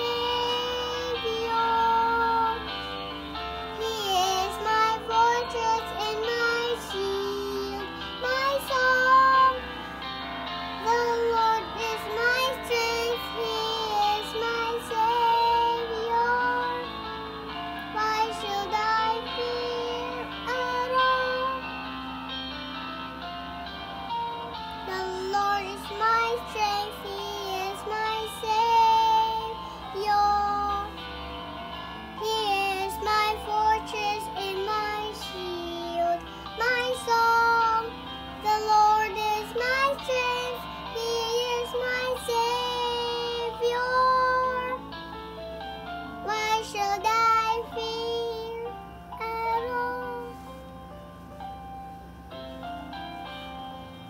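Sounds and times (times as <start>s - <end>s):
girl singing: 0.0s - 2.8s, 3.6s - 9.9s, 10.7s - 17.0s, 17.8s - 21.7s, 24.8s - 31.0s, 32.2s - 44.9s, 46.0s - 50.5s.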